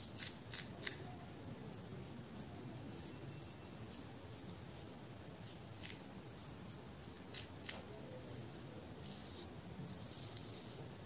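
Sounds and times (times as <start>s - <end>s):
fingernails scratching hair: 5.4s - 7.8s, 9.0s - 11.0s.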